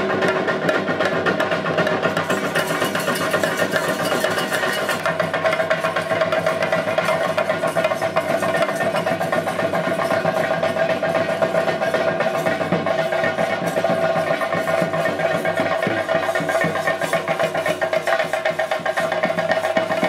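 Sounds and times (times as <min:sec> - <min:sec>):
drums played fast: 0:00.0 - 0:20.0.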